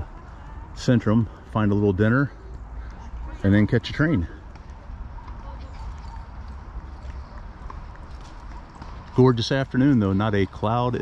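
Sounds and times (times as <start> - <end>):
light footsteps: 0.0 - 11.0.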